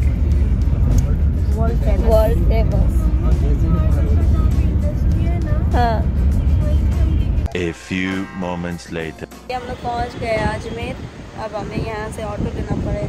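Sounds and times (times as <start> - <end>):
vehicle road and engine rumble: 0.0 - 7.5, 9.4 - 13.0
music: 0.0 - 13.0
indistinct voices: 7.4 - 9.9.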